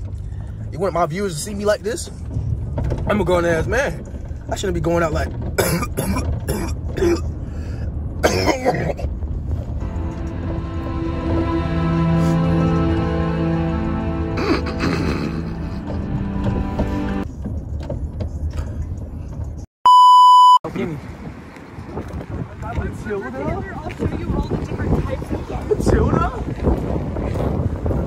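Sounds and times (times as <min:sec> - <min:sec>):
car cabin rumble: 0:00.0 - 0:11.9
man coughing: 0:05.6 - 0:07.3, 0:08.2 - 0:09.1, 0:14.4 - 0:15.8
electronic bleep tone: 0:19.9 - 0:20.6.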